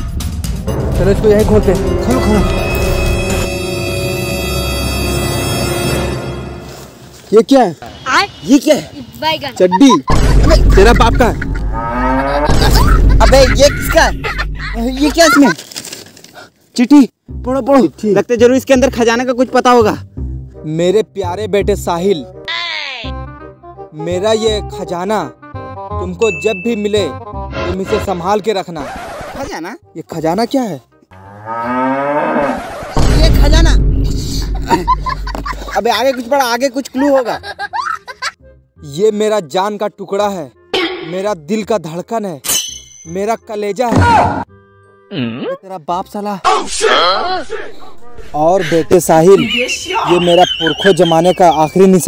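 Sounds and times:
background music sustained tones: 0.2s - 7.2s, 44.4s - 45.2s
low drone: 0.6s - 5.9s
cow mooing: 11.8s - 12.5s, 31.1s - 32.6s.

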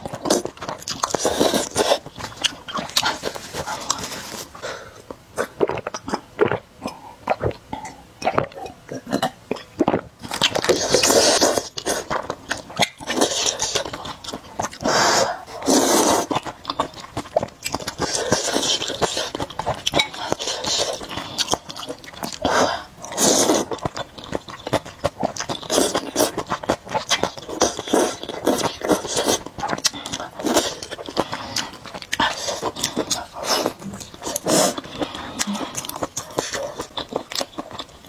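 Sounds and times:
slurping and chewing noodles: 0.0s - 38.0s.

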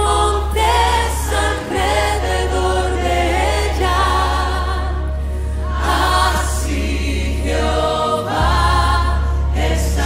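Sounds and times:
steady low bass: 0.0s - 10.0s
worship song with sung vocals: 0.0s - 10.0s.

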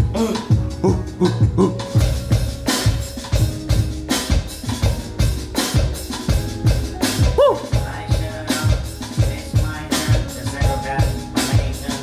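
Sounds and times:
electronic drum kit beat: 0.0s - 12.0s
music track: 0.0s - 12.0s.

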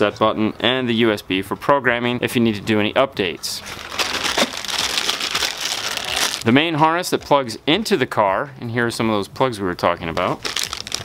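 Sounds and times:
plastic bag crinkling: 3.6s - 6.5s, 10.4s - 11.0s.

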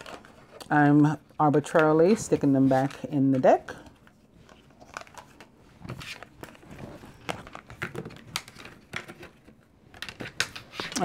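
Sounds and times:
cards clicking and rustling: 0.0s - 0.7s, 1.7s - 11.0s.

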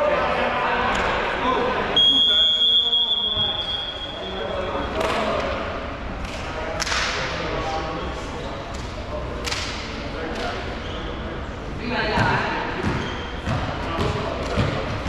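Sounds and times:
murmur of voices: 0.0s - 15.0s
volleyball hits echoing: 12.1s - 15.0s.

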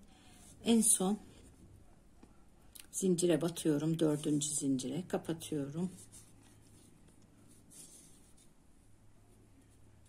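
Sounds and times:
crochet hook rustling thread: 0.0s - 10.0s
low steady hum: 0.0s - 10.0s.

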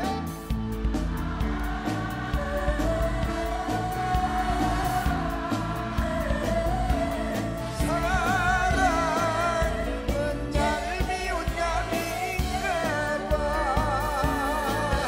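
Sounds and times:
backing band: 0.0s - 15.0s
steady drum beat: 0.0s - 15.0s
man singing: 7.7s - 15.0s.

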